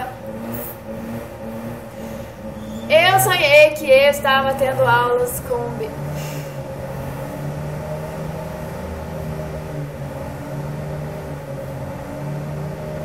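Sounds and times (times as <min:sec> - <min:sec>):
motor droning low: 0:00.0 - 0:13.0.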